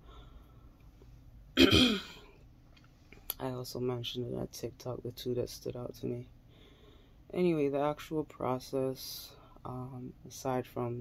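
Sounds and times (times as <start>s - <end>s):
woman clearing her throat: 1.6s - 2.3s.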